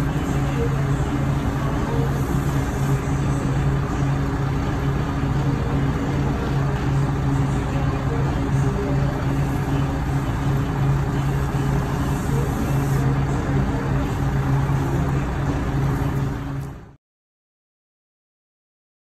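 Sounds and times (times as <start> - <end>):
motor droning hum: 0.0 - 17.0.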